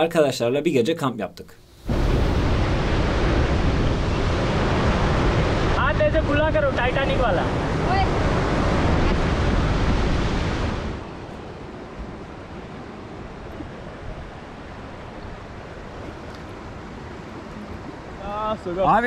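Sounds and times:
faint outdoor hiss: 0.0 - 7.9, 11.0 - 19.0
waterfall rushing: 1.8 - 11.2.

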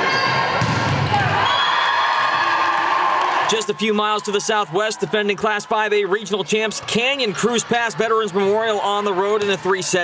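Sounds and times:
crowd voices: 0.0 - 10.0
volleyball play on court: 0.0 - 10.0.

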